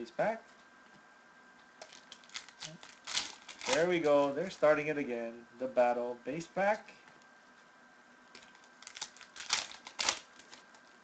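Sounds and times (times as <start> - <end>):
foil wrapper crinkling and tearing: 1.8 - 4.7, 8.4 - 11.0.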